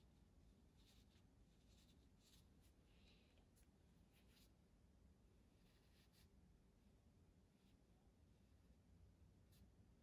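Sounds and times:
brush scratching on paper: 0.4s - 4.6s, 5.4s - 6.4s.

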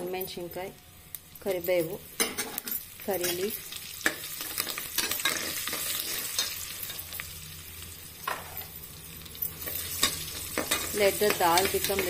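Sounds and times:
spices sizzling in hot oil: 0.0s - 12.0s.

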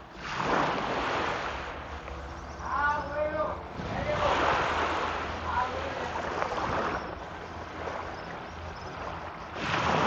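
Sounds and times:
small waves washing on sand: 0.0s - 10.0s.

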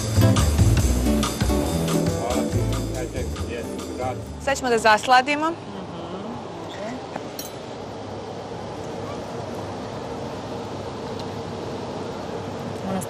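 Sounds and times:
tableware clinking: 7.3s - 7.6s.

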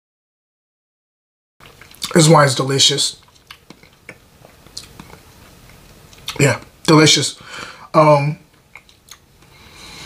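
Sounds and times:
wet mouth clicks and lip smacks: 1.6s - 2.2s, 3.2s - 6.4s, 8.6s - 9.3s.

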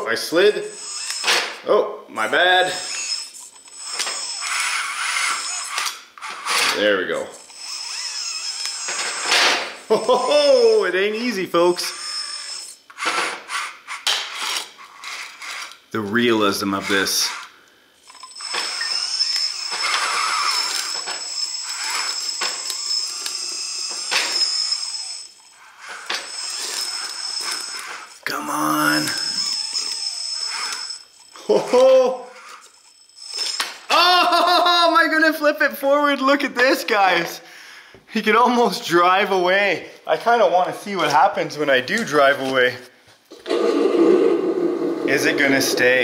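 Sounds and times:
harsh hiss-like mechanical noise: 0.2s - 34.0s
man laughing exclamation: 9.9s - 11.0s, 31.4s - 32.3s, 33.9s - 35.1s.

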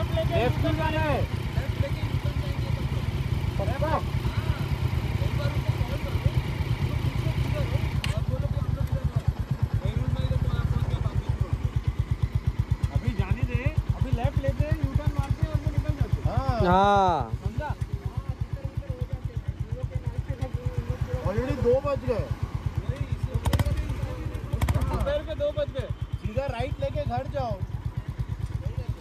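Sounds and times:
motorcycle engines idling: 0.0s - 29.0s.

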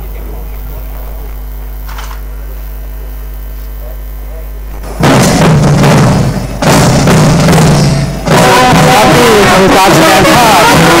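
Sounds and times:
electrical mains hum: 0.0s - 5.0s.

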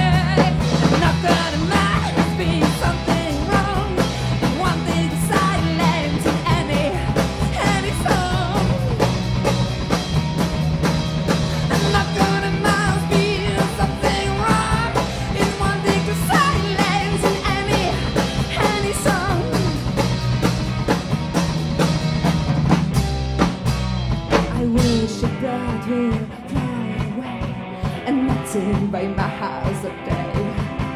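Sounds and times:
woman singing into microphone: 0.0s - 9.0s, 11.7s - 19.9s, 24.5s - 30.8s
bass guitar: 0.0s - 30.9s
drum kit beat: 0.0s - 30.9s
electric guitar: 0.0s - 30.9s.

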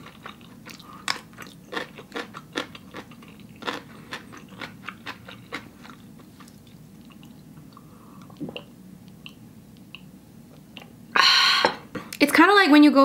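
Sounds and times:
crunchy chewing: 0.0s - 10.1s.

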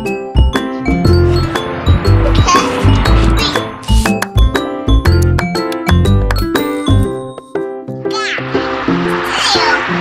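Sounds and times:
background music with plucked melody: 0.0s - 10.0s.

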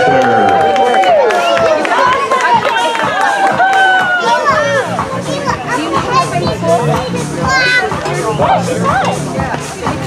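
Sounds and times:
background music with bass line: 0.0s - 10.0s
children chattering: 1.3s - 3.2s, 4.0s - 10.0s.

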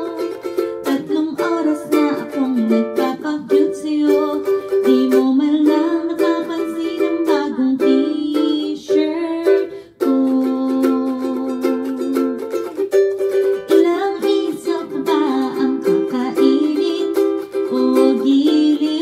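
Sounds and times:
woman singing: 0.0s - 12.6s, 13.6s - 19.0s
ukulele strumming chords: 0.0s - 19.0s.

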